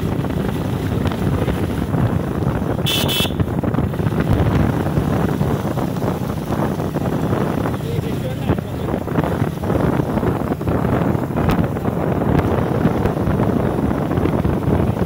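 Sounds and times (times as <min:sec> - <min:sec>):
wind and road noise: 0:00.0 - 0:15.0
vehicle horn toot: 0:02.8 - 0:03.5.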